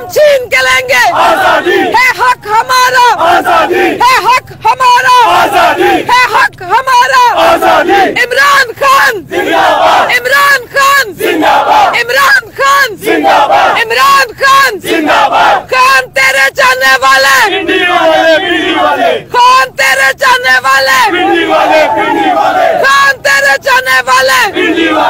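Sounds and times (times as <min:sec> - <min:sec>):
crowd chanting: 0:00.0 - 0:25.0
woman shouting slogans: 0:00.0 - 0:25.0.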